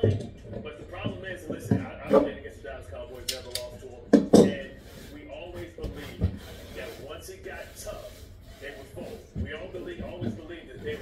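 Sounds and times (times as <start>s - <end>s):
man's voice: 0.0s - 11.0s.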